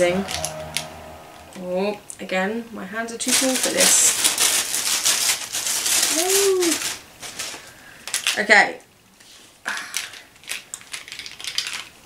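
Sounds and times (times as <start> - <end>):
plastic sticks clicking: 9.7 - 11.9.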